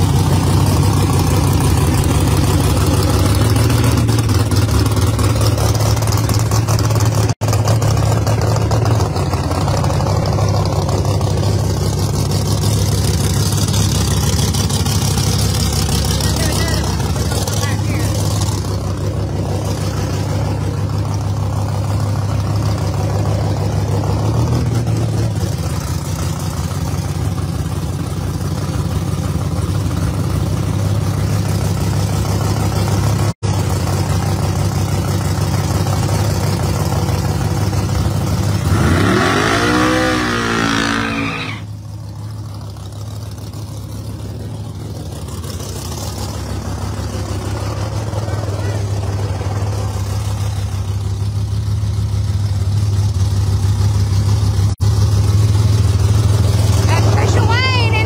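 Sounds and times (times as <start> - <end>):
engine revving: 0.0 - 27.6, 35.7 - 41.9, 44.9 - 51.3, 54.2 - 58.0
race car engines idling: 0.0 - 58.0.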